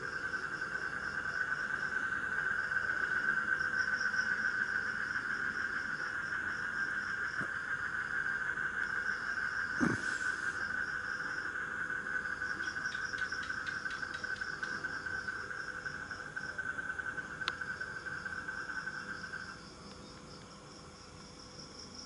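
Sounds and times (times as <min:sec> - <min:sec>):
insect trilling: 0:00.0 - 0:20.4
insect chirping: 0:00.0 - 0:22.0.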